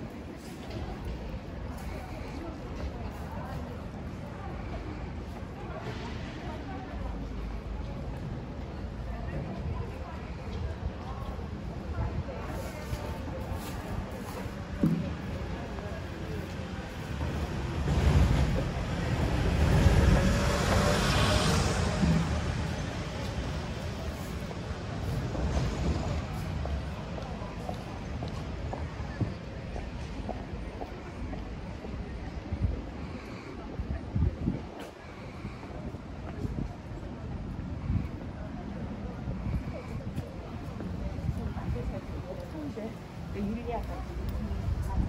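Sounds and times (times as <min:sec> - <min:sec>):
indistinct voices of passersby: 0:00.0 - 0:45.0
small truck driving past: 0:18.2 - 0:23.8.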